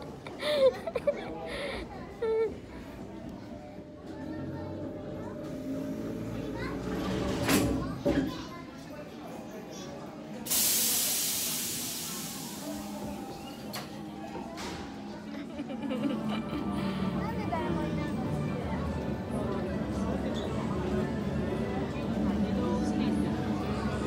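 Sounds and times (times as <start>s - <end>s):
murmur of voices and children: 0.0s - 24.0s
loud hiss: 10.5s - 13.2s.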